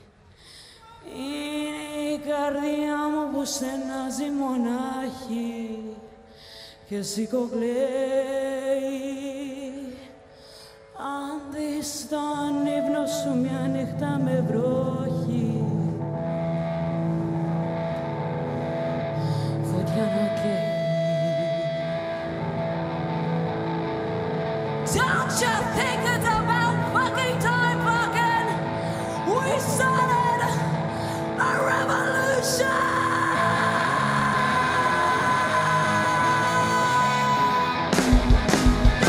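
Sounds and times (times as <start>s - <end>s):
person singing: 0.8s - 10.3s, 10.9s - 39.0s
distorted guitar chord droning: 13.3s - 39.0s
live rock band playing: 37.1s - 39.0s.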